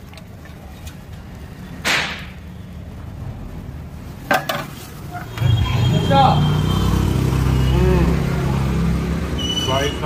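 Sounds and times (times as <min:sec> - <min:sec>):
road traffic engine hum: 0:00.0 - 0:10.0.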